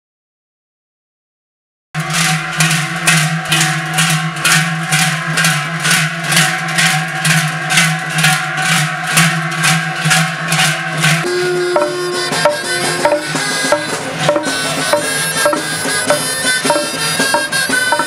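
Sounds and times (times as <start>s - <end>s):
large cowbells clanging rhythmically: 2.0s - 18.0s.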